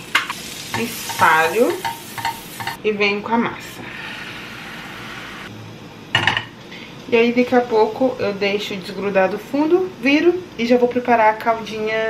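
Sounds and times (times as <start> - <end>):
batter sizzling in frying pan: 0.0 - 2.8.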